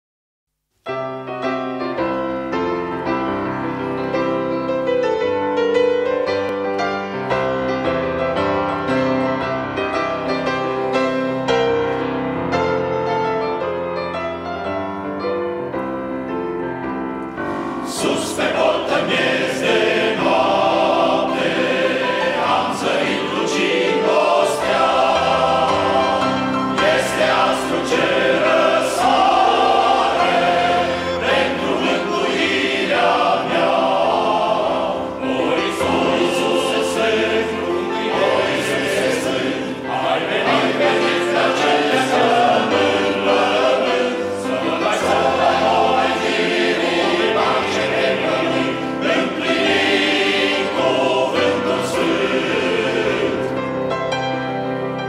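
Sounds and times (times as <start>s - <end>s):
male choir singing: 17.8s - 53.9s.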